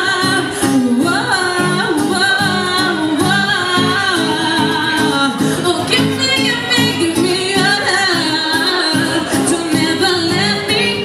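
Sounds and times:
strummed acoustic guitar: 0:00.0 - 0:11.0
woman singing into microphone: 0:00.0 - 0:11.0.

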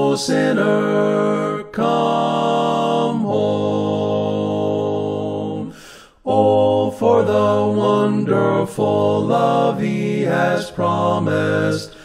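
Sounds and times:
unaccompanied hymn singing: 0:00.0 - 0:12.0.

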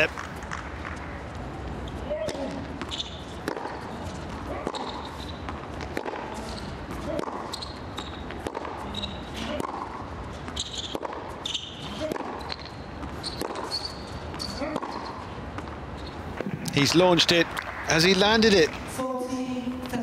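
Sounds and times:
shoe squeaks on court: 0:01.8 - 0:09.5, 0:10.4 - 0:16.5
racket hitting tennis ball: 0:02.2 - 0:17.8.

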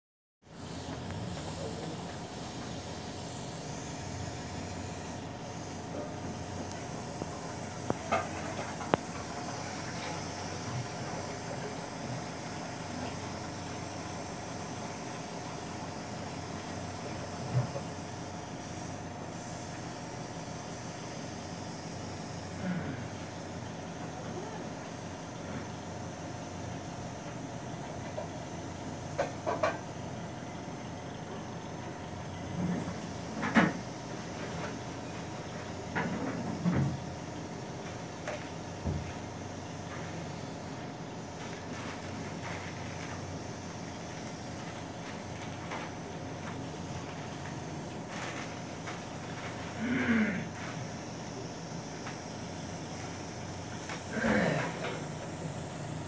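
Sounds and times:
medical equipment hum and hiss: 0:00.4 - 0:56.0.

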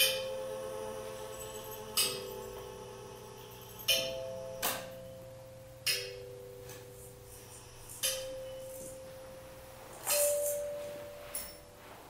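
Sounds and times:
bell-like struck tones: 0:00.0 - 0:12.0.

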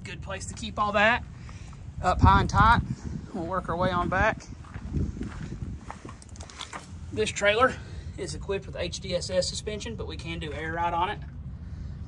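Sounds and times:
footsteps on gravel: 0:03.4 - 0:07.1.

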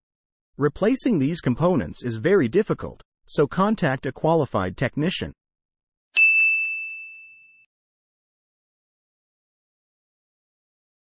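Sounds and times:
bright bell ding: 0:06.2 - 0:07.7.

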